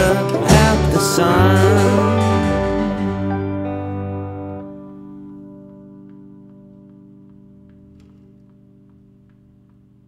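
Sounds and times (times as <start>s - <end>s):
low bass notes: 0.0s - 6.8s
guitar chord ringing out: 0.0s - 8.4s.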